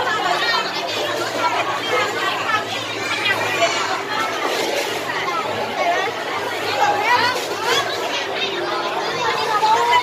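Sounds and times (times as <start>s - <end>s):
chatter of voices: 0.0s - 10.0s
children's voices: 0.0s - 10.0s.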